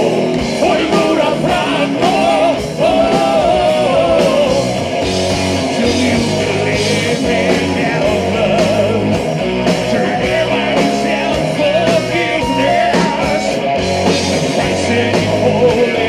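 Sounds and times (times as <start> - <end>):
heavy metal band playing: 0.0 - 16.0.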